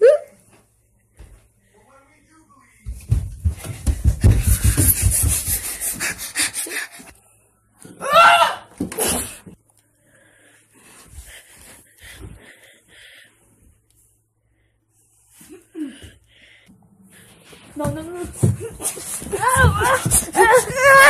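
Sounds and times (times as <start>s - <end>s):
running footsteps: 2.8s - 7.0s, 17.4s - 21.0s
panting breath: 3.6s - 7.2s, 10.2s - 13.4s.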